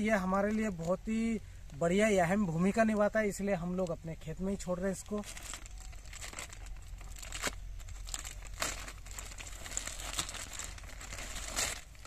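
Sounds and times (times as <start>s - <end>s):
plastic bag crinkling: 4.6s - 12.0s.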